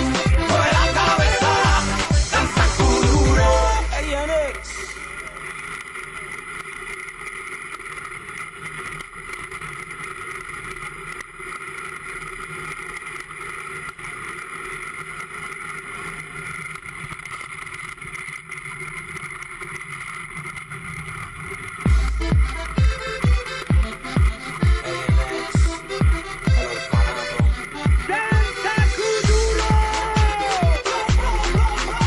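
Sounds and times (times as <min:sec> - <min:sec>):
runners rumbling on ice: 0:05.0 - 0:32.0.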